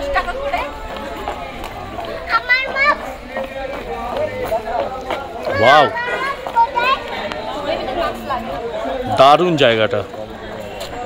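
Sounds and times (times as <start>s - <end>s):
people talking while walking: 0.0s - 11.0s.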